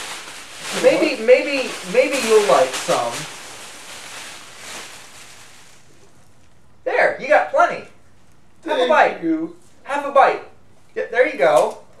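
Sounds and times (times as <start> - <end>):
packing peanuts pouring from bag: 0.0 - 6.0.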